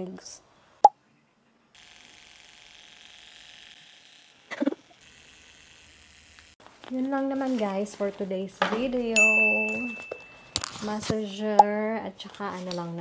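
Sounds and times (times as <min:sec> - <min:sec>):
electric massager motor whirring: 0:01.8 - 0:06.6.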